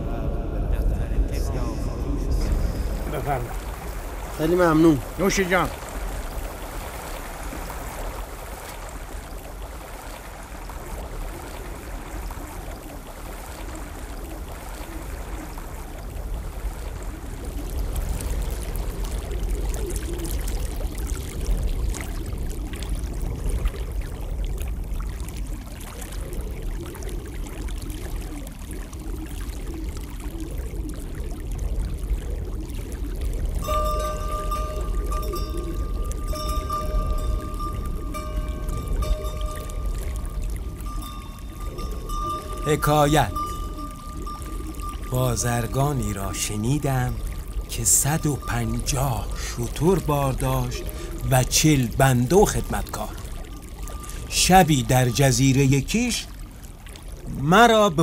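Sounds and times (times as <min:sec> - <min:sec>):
low rumble: 0:00.0 - 0:05.2.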